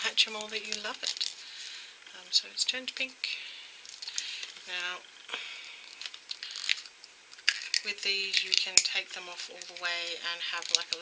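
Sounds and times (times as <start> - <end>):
plastic shell cracking: 0.3 - 1.4, 3.8 - 4.6, 5.8 - 11.0.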